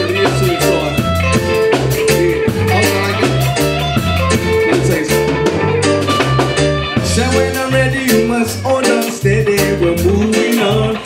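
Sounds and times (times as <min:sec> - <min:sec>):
bass line: 0:00.0 - 0:11.0
drum kit steady beat: 0:00.0 - 0:11.0
electric guitar: 0:00.0 - 0:11.0
keyboard: 0:00.0 - 0:11.0.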